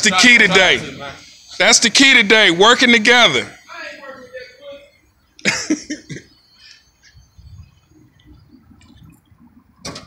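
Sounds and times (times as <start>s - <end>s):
man coughing: 5.4s - 6.3s.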